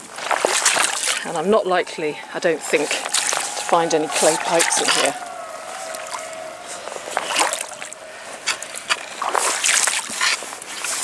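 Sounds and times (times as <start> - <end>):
water splashing from wading: 0.0 - 10.7.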